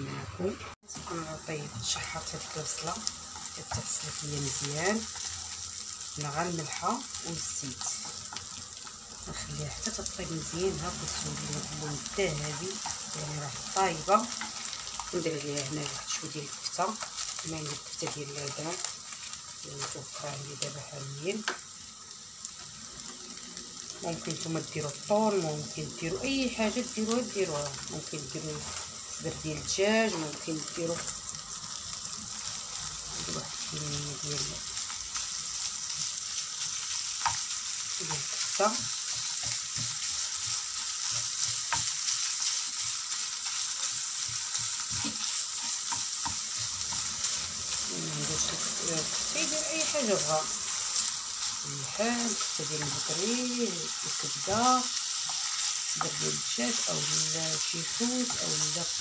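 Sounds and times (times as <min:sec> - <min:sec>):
onions sizzling in oil: 0:00.0 - 0:59.0
wooden spoon scraping and tapping pan: 0:36.6 - 0:47.4.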